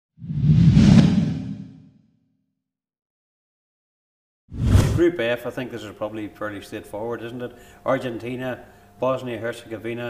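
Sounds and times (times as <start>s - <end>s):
whoosh sound effect: 0.2s - 1.8s, 4.5s - 5.0s.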